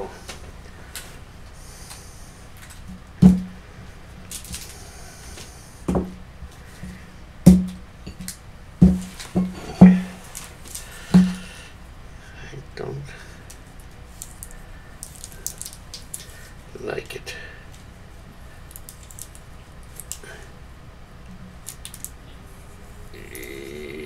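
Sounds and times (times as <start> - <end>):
boxes knocking on tabletop: 8.8 - 10.1, 11.2 - 11.4
packaging rustling: 14.2 - 16.4.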